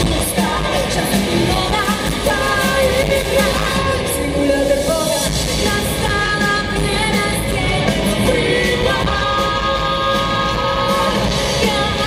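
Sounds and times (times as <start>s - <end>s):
lead vocals singing: 0.0s - 12.0s
live rock band playing: 0.0s - 12.0s.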